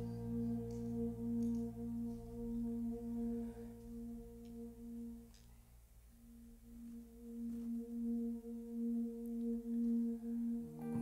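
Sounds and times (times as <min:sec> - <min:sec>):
soft keyboard pad: 0:00.0 - 0:11.0.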